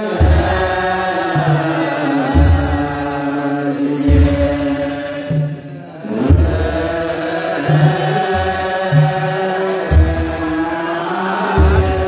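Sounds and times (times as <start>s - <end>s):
deep drum beats: 0.0s - 10.9s
men chanting together: 0.0s - 12.0s.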